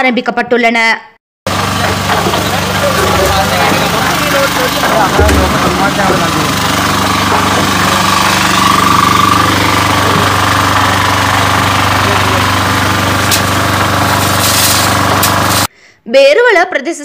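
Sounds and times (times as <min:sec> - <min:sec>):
machine motor running: 0:01.5 - 0:15.7
people's voices: 0:01.8 - 0:08.6, 0:11.9 - 0:12.6.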